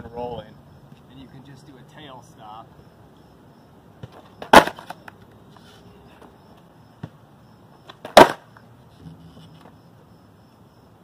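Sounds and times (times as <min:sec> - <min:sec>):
skateboard slapping on concrete: 0:04.0 - 0:05.7, 0:07.9 - 0:09.8
skateboard clicks: 0:04.1 - 0:05.8.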